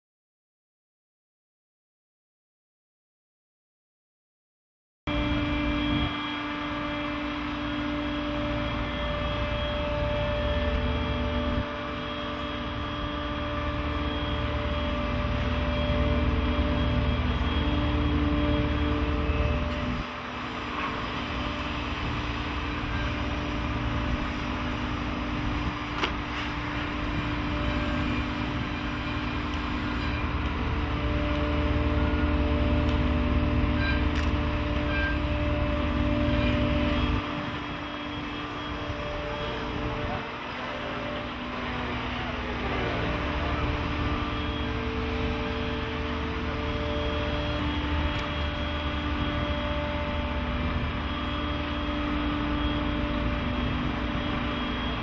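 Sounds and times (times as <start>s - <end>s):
hydraulics humming: 5.1s - 55.0s
low machine rumble: 5.1s - 55.0s.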